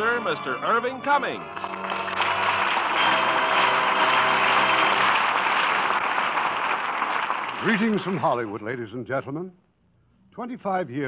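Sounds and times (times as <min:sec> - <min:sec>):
studio audience applauding: 0:01.4 - 0:08.5.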